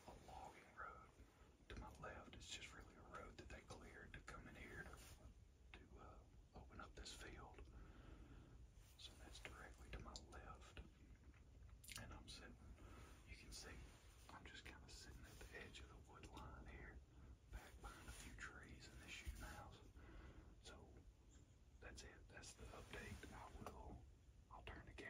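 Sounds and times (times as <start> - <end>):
person whispering: 0.0 - 7.8, 8.8 - 11.0, 11.8 - 20.0, 20.6 - 21.0, 21.8 - 25.0.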